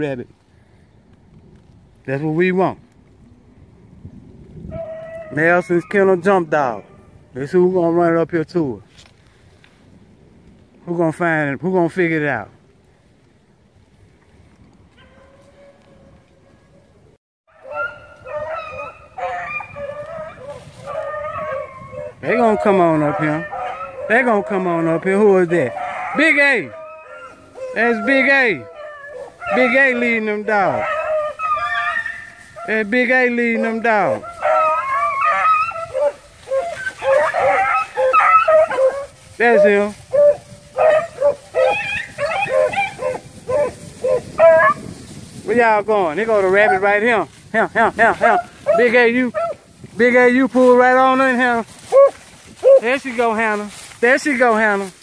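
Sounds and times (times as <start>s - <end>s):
pack of hounds baying: 4.7s - 7.2s, 17.5s - 44.9s, 46.4s - 47.1s, 48.0s - 49.7s, 50.3s - 53.6s.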